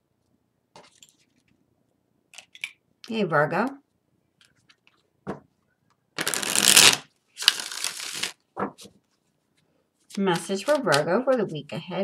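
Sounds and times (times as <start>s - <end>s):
cards being shuffled: 6.2s - 9.0s.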